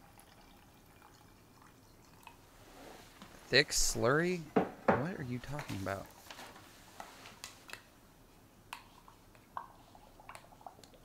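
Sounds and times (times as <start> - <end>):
water trickling into glass jar: 0.0 - 2.4.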